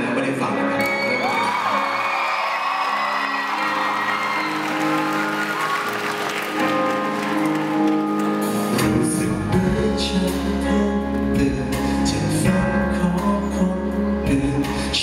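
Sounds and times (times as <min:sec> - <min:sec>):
audience applauding and cheering: 0:00.8 - 0:09.1.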